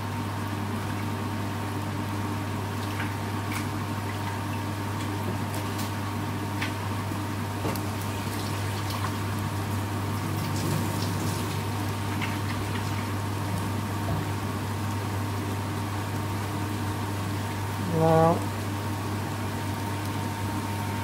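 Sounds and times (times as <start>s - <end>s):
onions sizzling in a pan: 0.1s - 21.0s.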